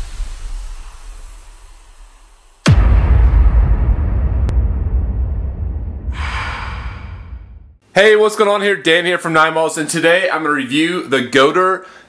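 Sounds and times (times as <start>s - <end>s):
airy hiss: 0.0s - 2.7s
low rumble: 2.7s - 7.8s.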